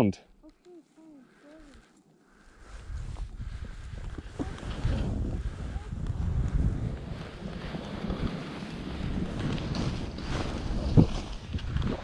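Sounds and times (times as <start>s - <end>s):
skis sliding through snow: 2.4s - 12.0s
wind buffeting microphone: 2.6s - 12.0s.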